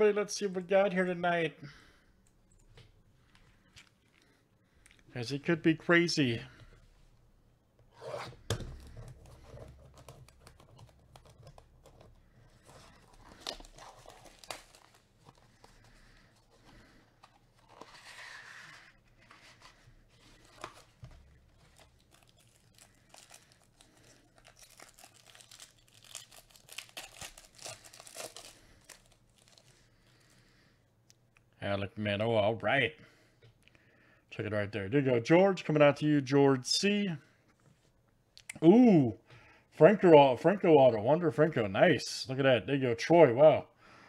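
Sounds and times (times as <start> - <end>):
wrapper tearing and crinkling: 12.6 - 15.4, 21.5 - 29.8.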